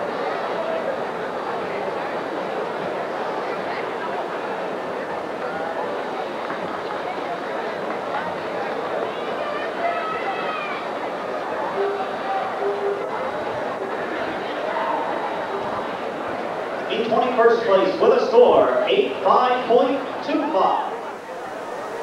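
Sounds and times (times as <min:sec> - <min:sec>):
crowd hubbub: 0:00.0 - 0:22.0
higher calls from crowd: 0:07.4 - 0:22.0.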